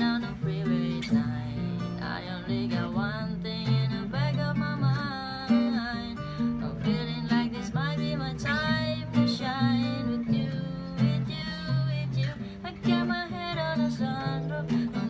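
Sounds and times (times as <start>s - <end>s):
strummed acoustic guitar: 0.0s - 15.0s
woman singing pop melody: 0.0s - 15.0s.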